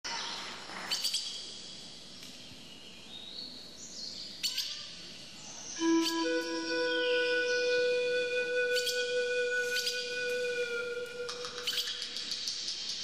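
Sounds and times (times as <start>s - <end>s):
birds chirping: 2.1s - 13.0s
held flute-like note: 5.8s - 12.4s.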